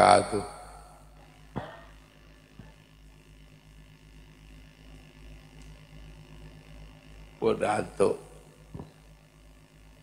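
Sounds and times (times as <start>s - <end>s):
faint low electrical hum: 0.0s - 10.0s.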